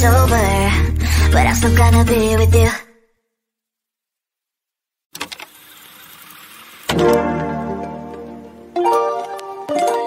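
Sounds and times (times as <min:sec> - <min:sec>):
music: 0:00.0 - 0:02.8, 0:06.9 - 0:10.0.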